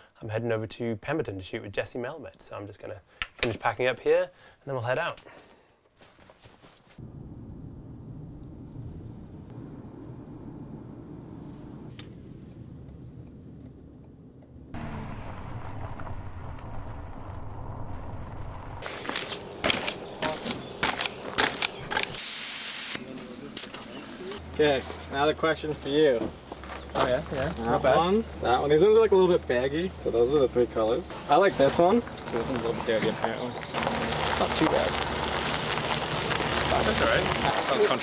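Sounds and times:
road rumble inside moving car: 7.0s - 18.8s
short hiss: 22.2s - 23.0s.

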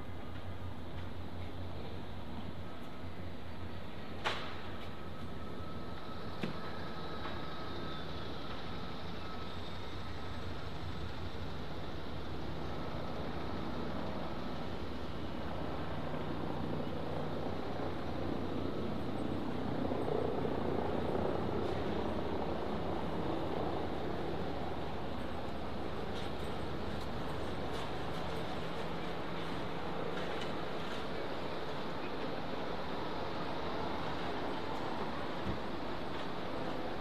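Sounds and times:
urban traffic rumble: 0.0s - 37.0s.

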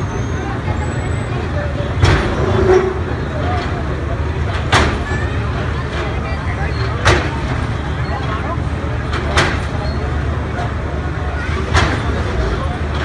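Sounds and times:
crowd chatter: 0.0s - 13.0s
excavator diesel engine running: 0.0s - 13.0s.

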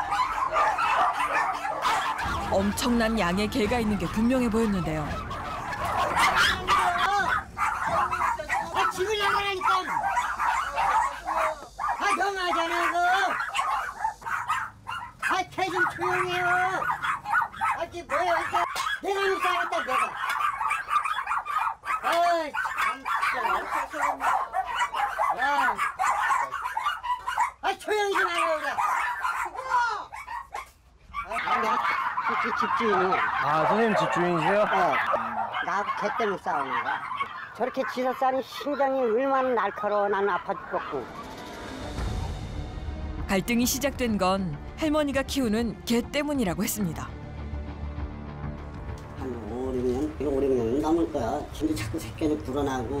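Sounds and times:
dogs howling: 0.0s - 42.4s
pack of dogs barking and yelping: 0.0s - 42.4s.

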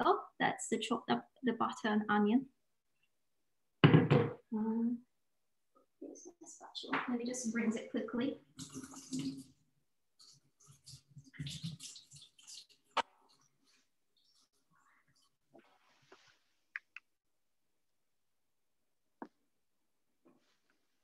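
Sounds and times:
soft rustling: 13.4s - 16.7s.

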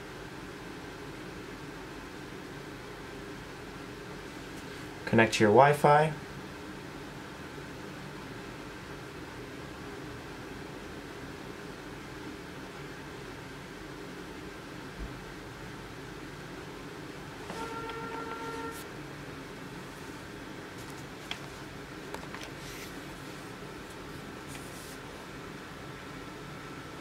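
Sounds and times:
faint hum: 0.0s - 27.0s
steady tone: 17.4s - 19.0s.

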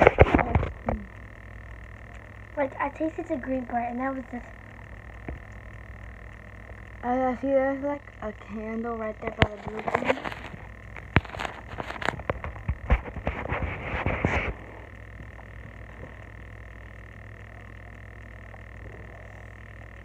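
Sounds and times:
microphone handling noise: 0.0s - 1.1s, 9.2s - 16.5s
faint high whine: 0.0s - 20.0s
low background hum: 0.0s - 20.0s.

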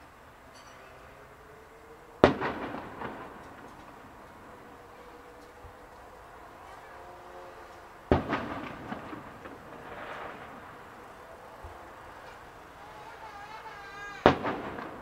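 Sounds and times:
rolling echo: 0.0s - 13.6s, 14.2s - 15.0s
firework shells bursting: 2.2s - 6.1s, 7.8s - 15.0s.

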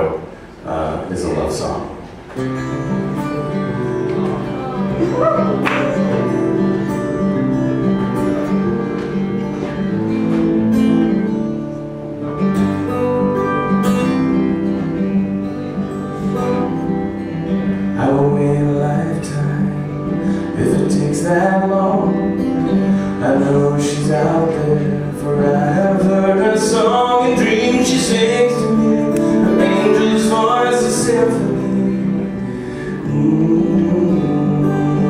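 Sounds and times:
acoustic guitar strumming: 1.2s - 35.0s
man singing: 17.8s - 35.0s.

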